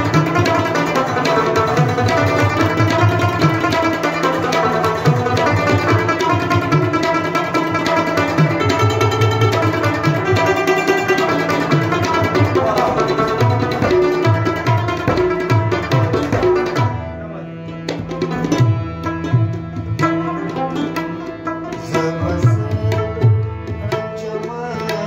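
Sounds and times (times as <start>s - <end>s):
harmonium: 0.0s - 25.0s
plucked lute notes: 0.0s - 25.0s
tabla: 0.0s - 25.0s.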